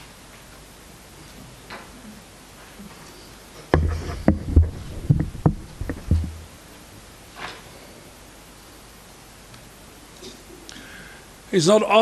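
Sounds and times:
microphone handling click: 3.8 - 6.5.

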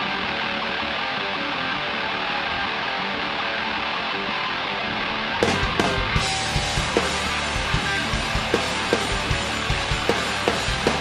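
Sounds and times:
electric guitar riff: 0.0 - 11.0
drums hitting hard: 5.4 - 11.0.

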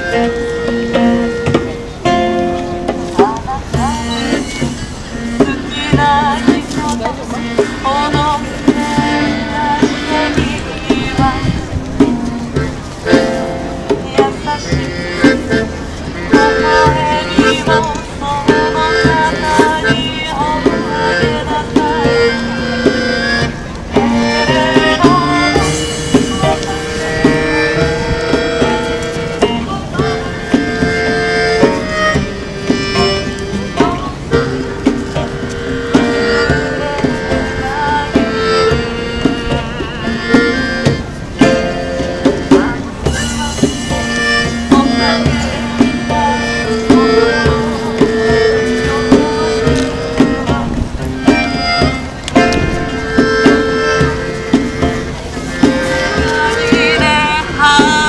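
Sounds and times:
acoustic guitar: 0.0 - 58.0
hand percussion: 0.0 - 58.0.

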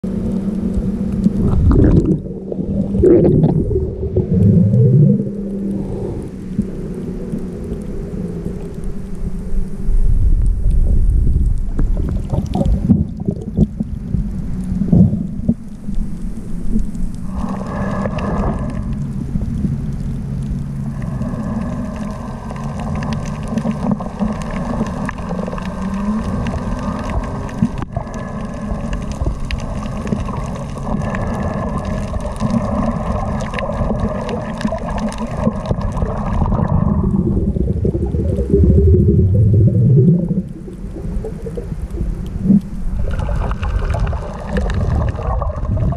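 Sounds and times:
steady droning hum: 0.0 - 45.9
underwater rumble of moving water: 0.0 - 45.9.

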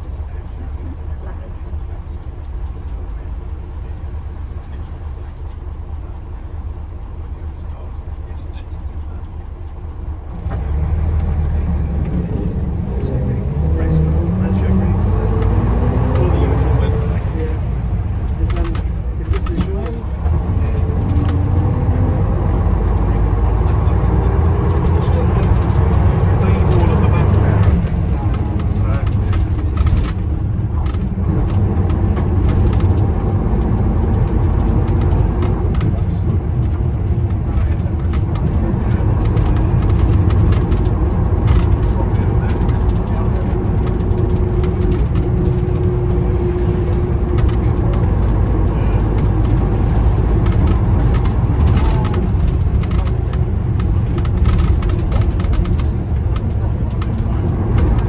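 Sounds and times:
diesel bus engine accelerating: 0.0 - 58.0.

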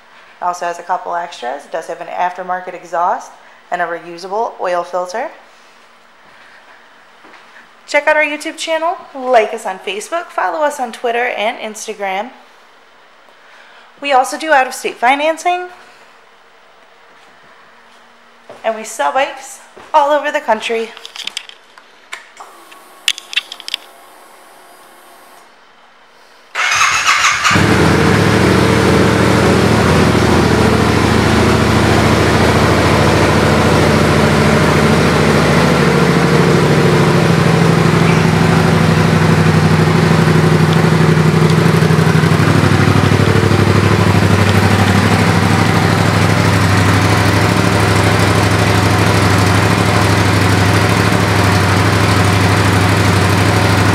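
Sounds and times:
motorcycle starter cranking: 26.6 - 28.7
motorcycle engine idling: 26.6 - 53.9.

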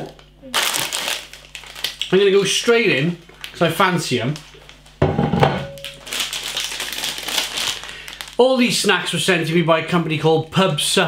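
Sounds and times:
plastic snack bag crinkling: 0.0 - 5.0, 5.7 - 9.6.

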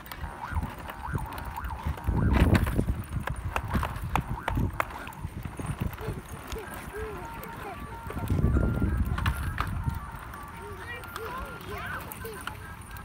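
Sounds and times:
plastic wheels clattering on concrete: 0.0 - 13.0
toy beeping tones: 0.2 - 13.0.

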